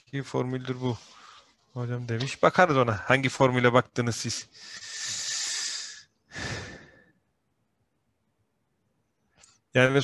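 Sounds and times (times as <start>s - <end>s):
breath out: 4.6s - 7.2s.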